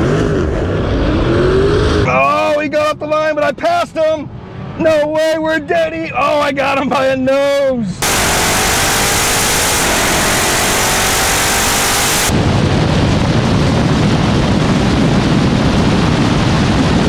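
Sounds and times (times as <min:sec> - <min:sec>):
faint car engine: 0:07.8 - 0:12.4
rumbling wind buffet: 0:12.3 - 0:17.0
wind noise on microphone: 0:12.3 - 0:17.0.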